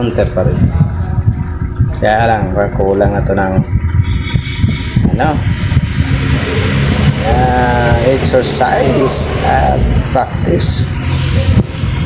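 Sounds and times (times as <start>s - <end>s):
low rumble: 0.0s - 12.0s
person speaking: 6.2s - 11.0s.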